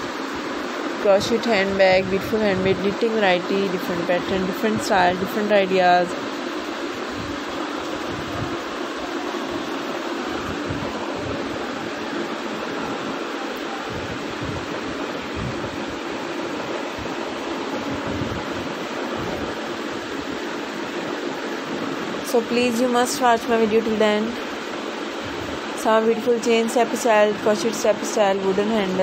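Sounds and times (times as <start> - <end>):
steady rushing fan noise: 0.0 - 29.0.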